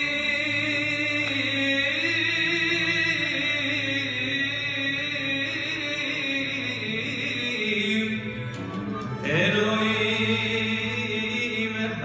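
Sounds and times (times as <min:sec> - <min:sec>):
ouds violins and cello: 0:00.0 - 0:12.0.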